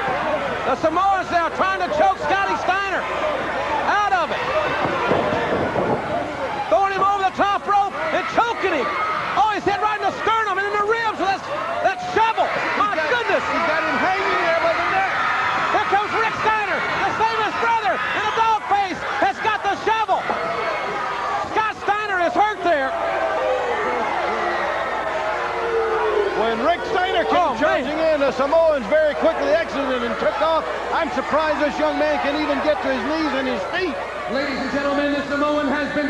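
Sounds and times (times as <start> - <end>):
arena crowd noise: 0.0 - 36.0
excited commentators calling action: 0.0 - 36.0.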